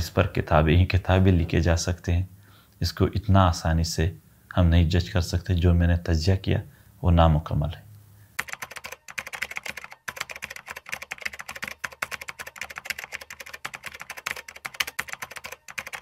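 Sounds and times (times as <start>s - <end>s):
keyboard typing: 8.4s - 16.0s.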